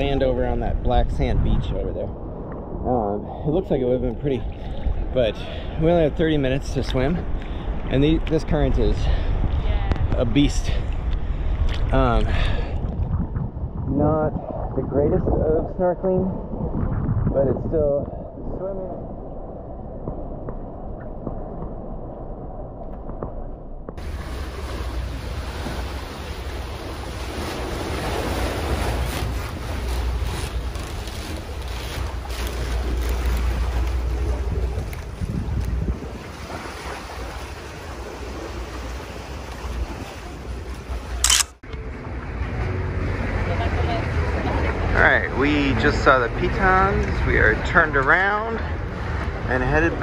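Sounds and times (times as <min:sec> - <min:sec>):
wind buffeting microphone: 0:00.0 - 0:41.2
water rushing past hulls: 0:00.0 - 0:50.0
water sloshing: 0:24.0 - 0:44.9
sharp click: 0:41.2 - 0:41.7.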